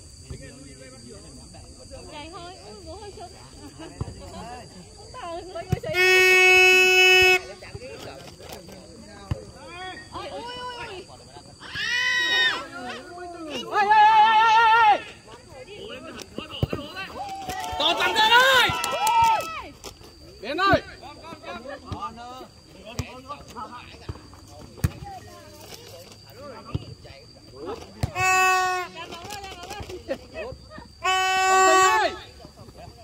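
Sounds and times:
loud drawn-out shout: 0:13.6 - 0:15.1.

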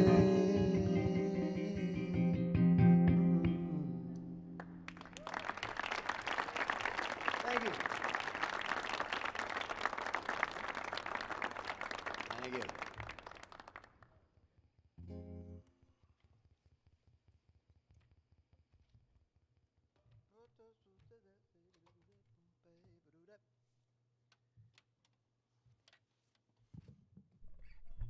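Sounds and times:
audience applauding: 0:04.6 - 0:13.9
audience whooping: 0:04.9 - 0:13.0.

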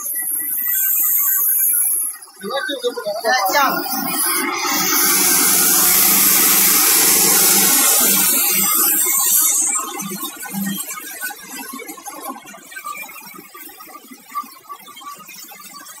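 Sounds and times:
low machine hum: 0:02.7 - 0:09.8
plastic pellets pouring into trough: 0:04.1 - 0:09.7.

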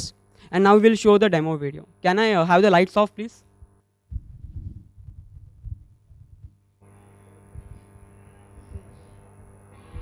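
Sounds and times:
low hiss and hum: 0:00.0 - 0:10.0
microphone handling thumps: 0:03.6 - 0:06.6, 0:07.5 - 0:07.9.

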